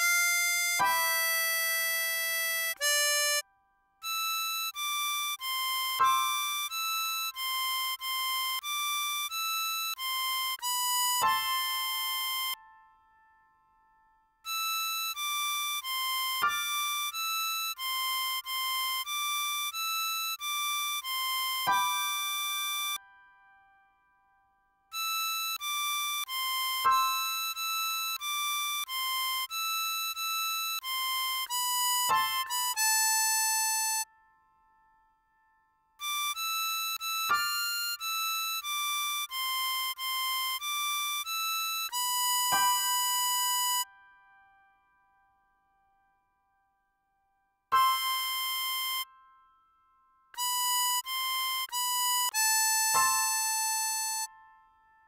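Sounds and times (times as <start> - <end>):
harmonica note: 0.0 - 12.8, 14.5 - 23.0, 24.9 - 34.2, 36.0 - 44.0, 47.7 - 49.3, 50.4 - 54.8.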